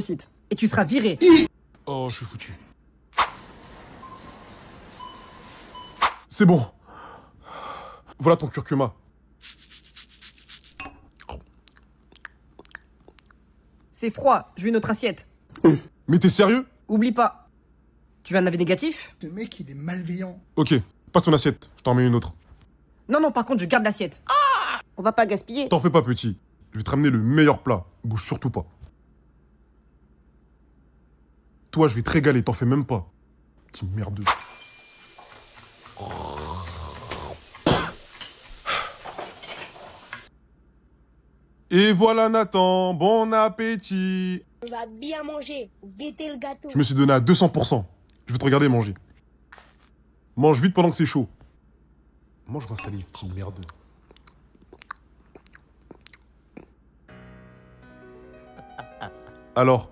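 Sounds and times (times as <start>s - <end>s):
person chewing food: 11.0s - 13.4s, 53.5s - 56.8s.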